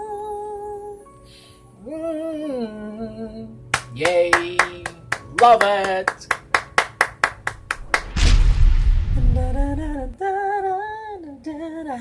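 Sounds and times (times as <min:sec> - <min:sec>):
person clapping hands: 0:03.8 - 0:08.1.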